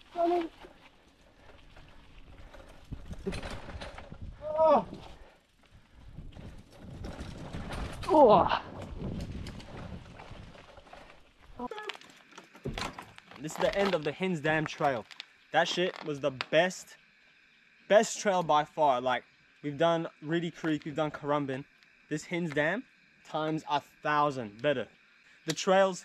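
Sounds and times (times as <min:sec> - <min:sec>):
bikes rattling and knocking: 0:00.0 - 0:16.5
bike tyres on dirt trail: 0:00.0 - 0:25.2.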